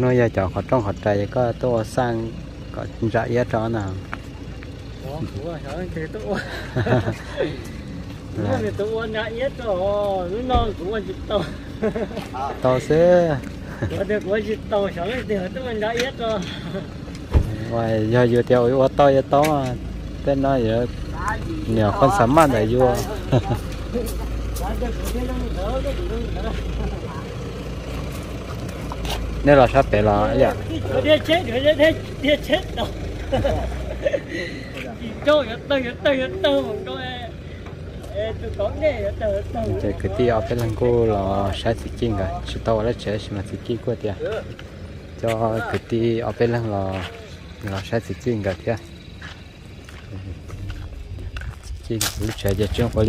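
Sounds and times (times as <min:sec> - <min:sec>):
distant people talking: 0:00.0 - 0:53.0
steady low rumble: 0:00.0 - 0:53.0.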